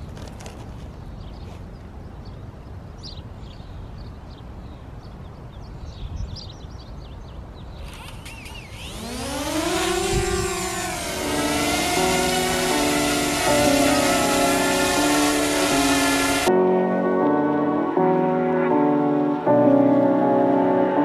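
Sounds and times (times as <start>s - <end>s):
pitched whine rising and falling: 7.9s - 16.6s
background music: 10.3s - 21.0s.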